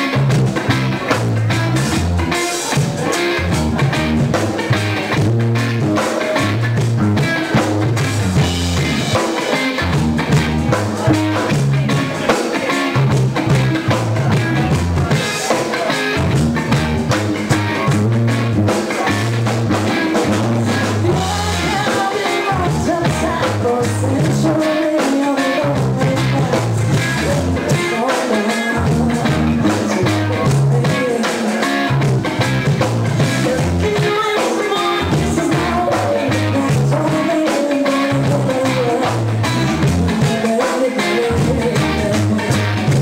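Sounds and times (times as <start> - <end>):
bass guitar: 0.0 - 43.0
drum kit: 0.0 - 43.0
electric guitar: 0.0 - 43.0
person singing: 17.4 - 32.4, 33.1 - 43.0.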